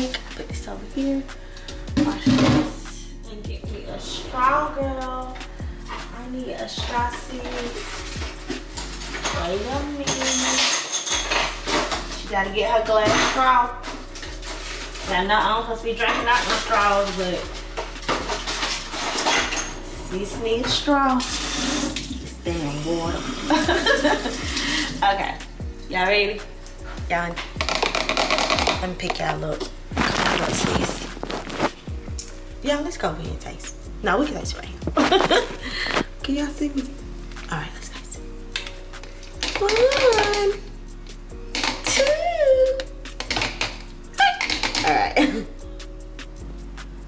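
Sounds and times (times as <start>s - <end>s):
dishes and utensils clattering: 7.4s - 15.1s, 16.0s - 19.9s
rustling on microphone: 29.9s - 32.0s, 34.5s - 36.2s.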